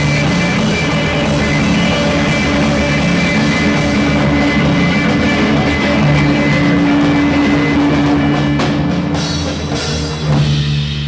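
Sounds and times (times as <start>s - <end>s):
distorted electric guitar chord: 0.0s - 8.5s.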